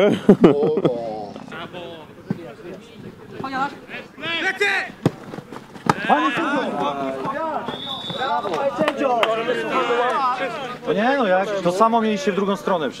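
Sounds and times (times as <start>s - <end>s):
football being kicked: 5.0s - 6.1s
men calling out: 5.9s - 12.3s
high whistle: 7.6s - 8.6s.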